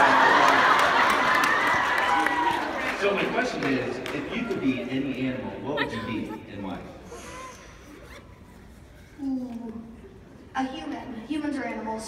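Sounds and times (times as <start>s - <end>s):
large hall background noise: 0.0s - 12.0s.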